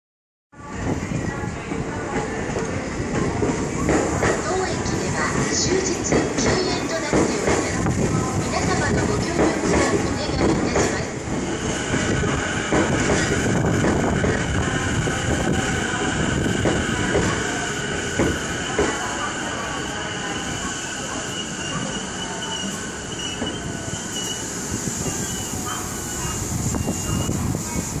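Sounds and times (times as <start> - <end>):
high-pitched brake squeal: 20.1 - 27.4.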